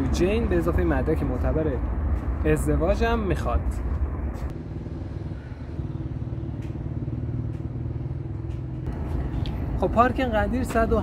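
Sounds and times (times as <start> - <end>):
vehicle engine running: 4.5 - 10.1.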